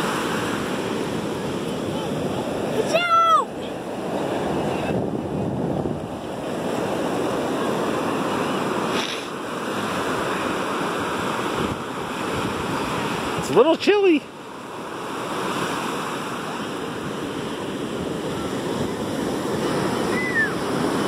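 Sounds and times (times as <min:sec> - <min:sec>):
ocean surf rushing: 0:00.0 - 0:21.0
wind on microphone: 0:03.5 - 0:13.6, 0:15.0 - 0:21.0.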